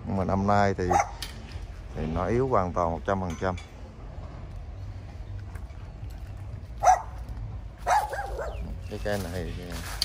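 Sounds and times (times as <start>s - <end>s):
dog barking: 0.8s - 1.2s, 6.8s - 7.2s, 7.8s - 8.7s.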